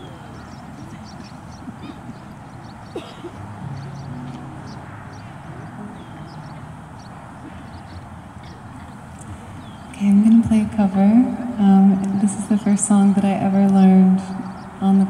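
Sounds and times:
acoustic guitar picked quietly: 0:02.9 - 0:11.8.

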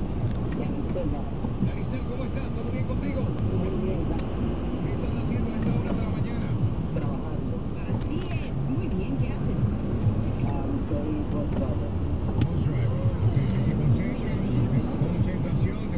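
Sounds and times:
car cabin road rumble: 0:00.0 - 0:15.9
indistinct voices talking: 0:00.0 - 0:15.9.

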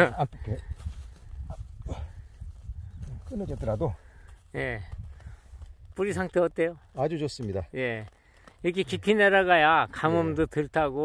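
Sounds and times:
person speaking: 0:08.7 - 0:11.0.

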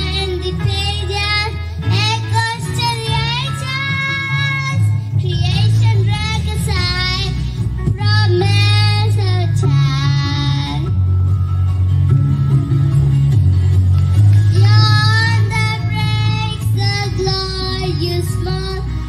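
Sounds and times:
girl singing into a microphone: 0:00.0 - 0:11.0, 0:14.5 - 0:19.0
backing track with bass line: 0:00.0 - 0:19.0.

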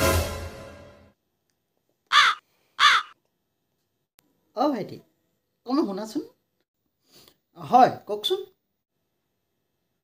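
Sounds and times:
crow cawing: 0:02.1 - 0:03.2.

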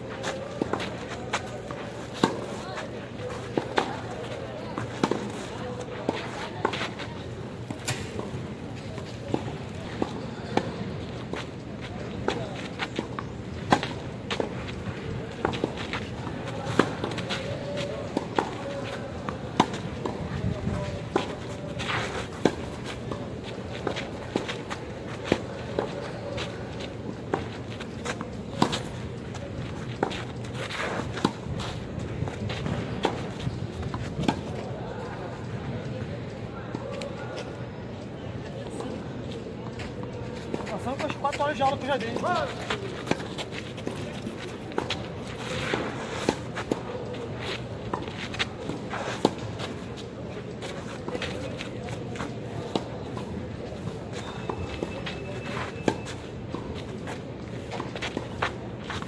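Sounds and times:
tennis ball bouncing: 0:01.6 - 0:02.6, 0:04.8 - 0:07.0.

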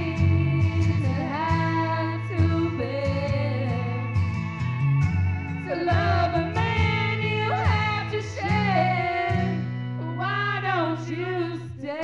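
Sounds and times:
woman singing karaoke: 0:00.0 - 0:04.4, 0:05.6 - 0:12.0
recorded backing track: 0:00.0 - 0:12.0.

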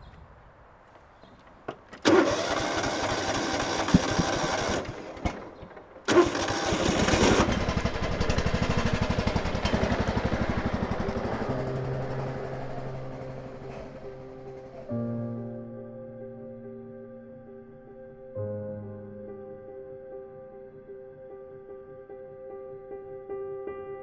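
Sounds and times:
lawn mower engine running: 0:01.7 - 0:14.9
background music: 0:06.1 - 0:24.0.

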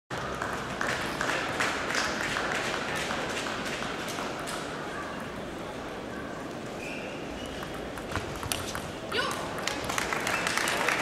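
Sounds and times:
spectators clapping: 0:00.1 - 0:04.7, 0:08.4 - 0:11.0
crowd noise: 0:00.1 - 0:11.0.

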